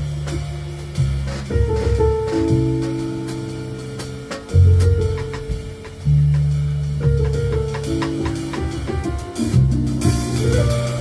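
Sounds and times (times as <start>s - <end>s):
drum kit keeping time: 0.0s - 11.0s
electric keyboard chords: 0.0s - 11.0s
plucked upright bass: 0.0s - 11.0s.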